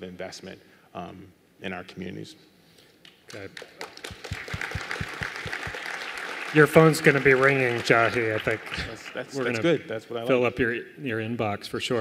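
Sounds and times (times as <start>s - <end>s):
hands clapping against microphone: 3.0s - 9.3s
audience applause: 3.3s - 9.6s.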